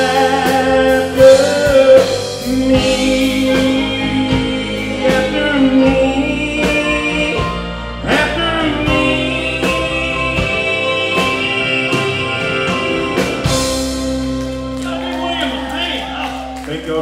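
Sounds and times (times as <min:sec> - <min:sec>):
steady drum beat: 0:00.0 - 0:16.6
electric and acoustic guitars: 0:00.0 - 0:17.0.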